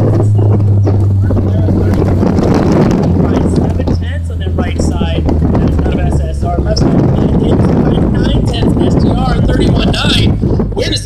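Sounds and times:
car engine droning: 0:00.0 - 0:11.0
wind rushing across microphone: 0:00.0 - 0:11.0.

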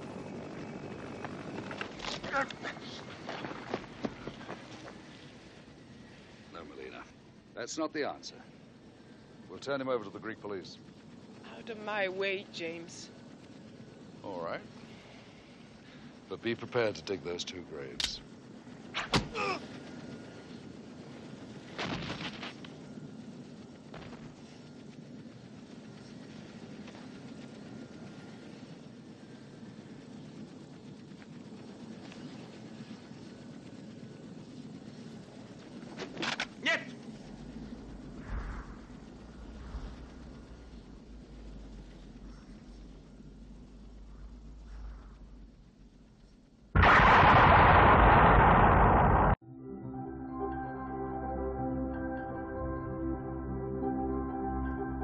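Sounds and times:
helicopter engine and rotor: 0:00.0 - 0:44.6
explosion-like crash: 0:46.7 - 0:49.4
soft ambient music: 0:49.4 - 0:55.0.

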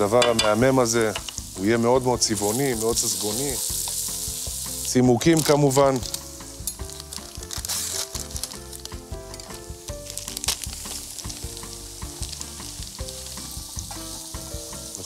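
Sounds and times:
onions sizzling in oil: 0:00.0 - 0:15.0
soft background music: 0:00.0 - 0:15.0.

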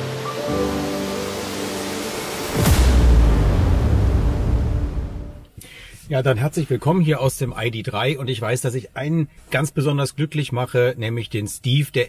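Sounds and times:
sustained synth notes: 0:00.0 - 0:05.5
whoosh: 0:00.3 - 0:05.5
deep rumbling boom: 0:02.3 - 0:05.5.

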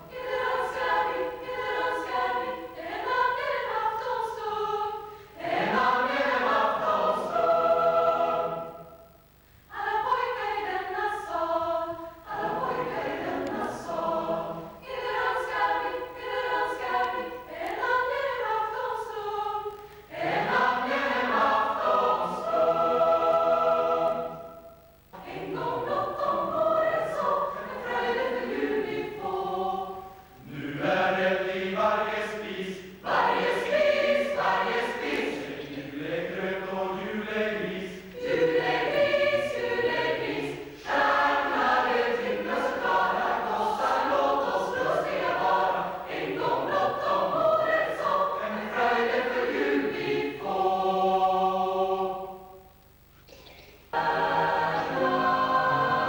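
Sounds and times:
youth choir singing: 0:00.0 - 0:09.1, 0:09.7 - 0:52.7, 0:53.3 - 0:56.0.

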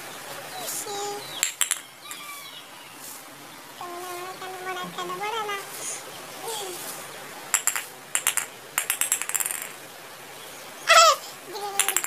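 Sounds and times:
toy ball jingling on concrete: 0:01.4 - 0:01.8, 0:07.6 - 0:09.8, 0:11.8 - 0:12.0.

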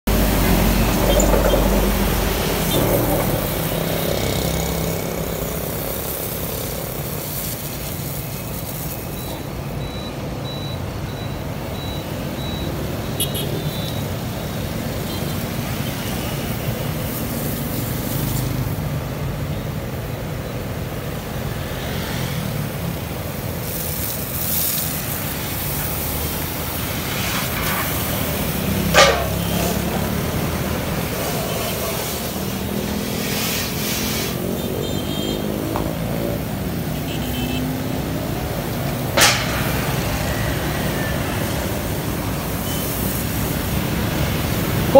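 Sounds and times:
road traffic with tyre hiss: 0:00.0 - 0:44.9.

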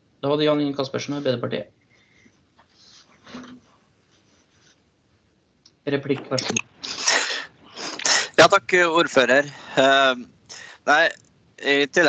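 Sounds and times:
faint rustling: 0:01.0 - 0:05.3
person speaking: 0:05.9 - 0:12.0.

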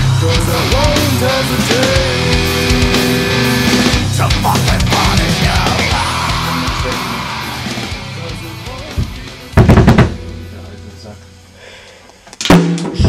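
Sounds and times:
drum kit hits: 0:00.0 - 0:11.2, 0:12.5 - 0:13.0
heavy metal electric guitar: 0:00.0 - 0:11.3.

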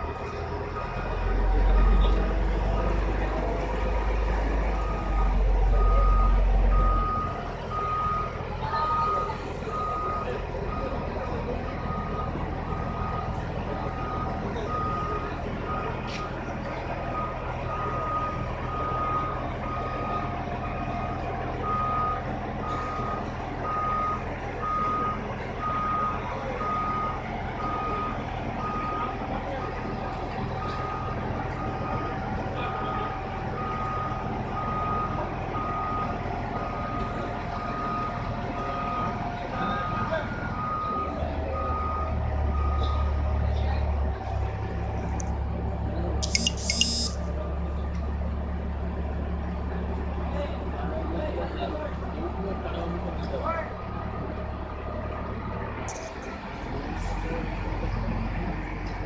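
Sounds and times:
crane engine running: 0:00.0 - 0:59.0
crane warning beeper: 0:04.7 - 0:16.3, 0:46.2 - 0:47.6.

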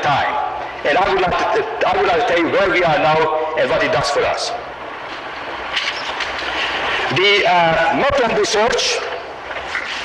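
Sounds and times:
faint steady whine: 0:00.0 - 0:10.0.

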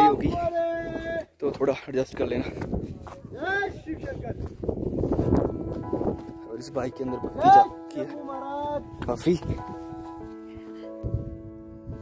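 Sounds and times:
wind buffeting microphone: 0:00.0 - 0:07.8, 0:08.6 - 0:12.0
background music: 0:05.0 - 0:12.0.

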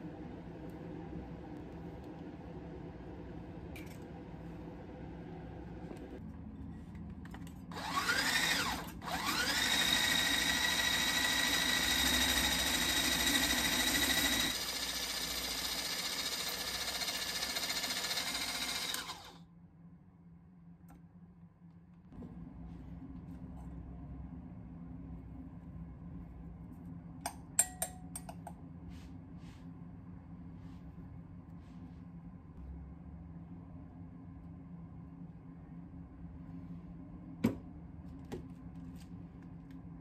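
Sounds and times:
hand blender whisk whining: 0:07.8 - 0:19.4.

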